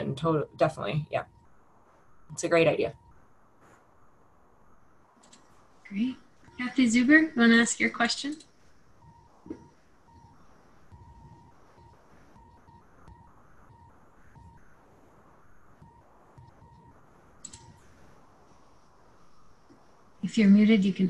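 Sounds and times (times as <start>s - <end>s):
faint electronic beeping tone: 0.0s - 3.3s, 4.6s - 19.6s.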